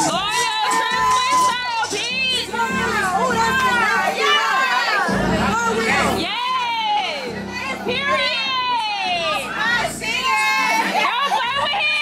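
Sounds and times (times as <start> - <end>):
high-pitched voices singing: 0.0 - 12.0.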